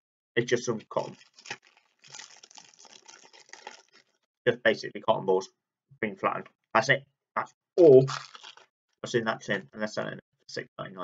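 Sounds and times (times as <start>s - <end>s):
plastic packaging crinkling: 0.9s - 4.2s, 8.1s - 8.7s.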